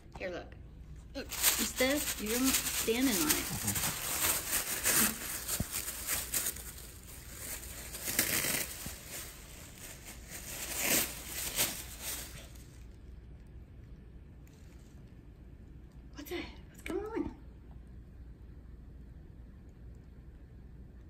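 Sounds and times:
dog tearing paper: 1.3s - 12.6s.

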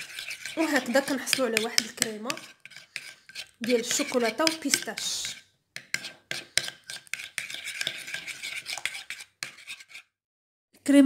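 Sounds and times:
metal spoon scraping bowl: 0.0s - 10.2s.

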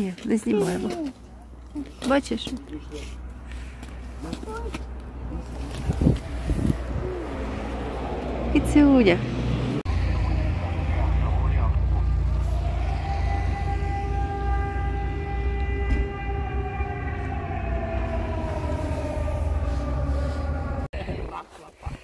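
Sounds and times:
low rumble: 5.1s - 20.9s
train passing: 6.2s - 20.9s.

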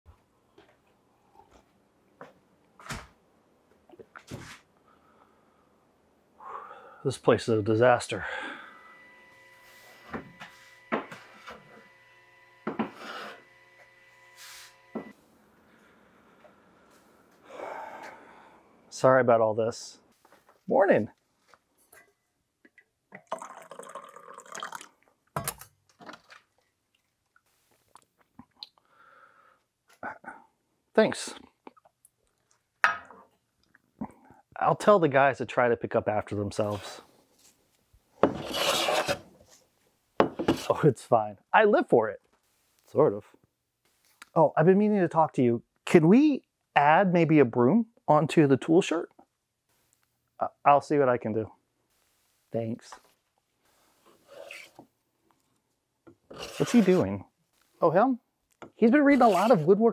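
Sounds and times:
faint steady hum: 4.8s - 19.0s
hand plane cutting wood: 38.2s - 39.3s, 54.2s - 54.8s, 56.3s - 57.1s, 59.1s - 59.6s
rasping scraping strokes: 38.3s - 39.3s, 54.0s - 54.8s, 56.3s - 57.2s, 59.0s - 59.7s.

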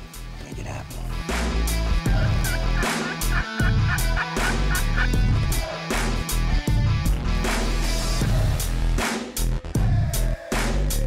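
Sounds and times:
electronic music with heavy bass: 0.6s - 11.0s
turkey gobbling: 2.1s - 5.2s.

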